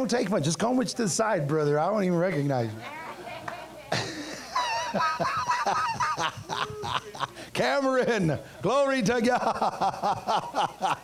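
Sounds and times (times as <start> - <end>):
high-pitched laughter: 3.9 - 7.4.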